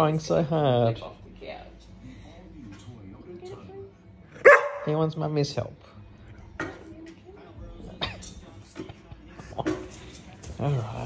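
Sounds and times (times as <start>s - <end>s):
dog barking: 4.4s - 4.9s.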